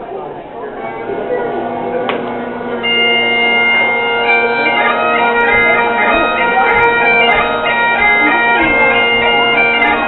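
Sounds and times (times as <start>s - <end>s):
bagpipe chanter long note: 0.8s - 10.0s
bagpipe drones: 0.8s - 10.0s.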